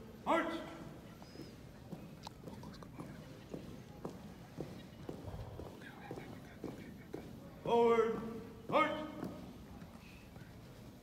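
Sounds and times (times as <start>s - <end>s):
marching footsteps on carpet: 1.2s - 11.0s.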